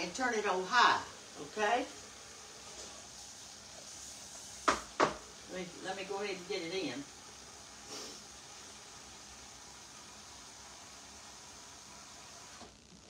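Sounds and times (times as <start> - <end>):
faucet running into pot: 0.0 - 12.7.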